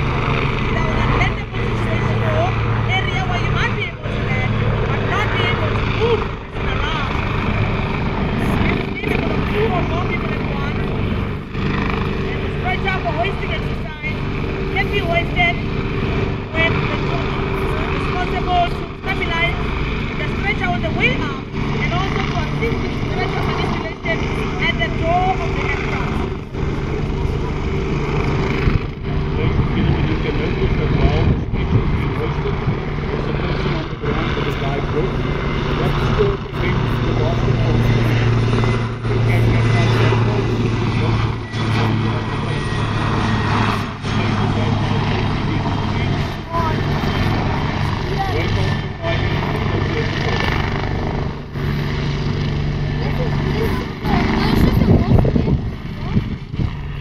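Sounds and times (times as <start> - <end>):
helicopter turbine and rotor noise: 0.0 - 57.0.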